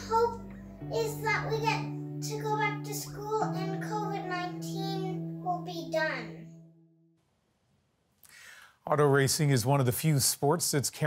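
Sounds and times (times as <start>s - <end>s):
girl singing: 0.0s - 6.6s
instrumental music: 0.0s - 7.2s.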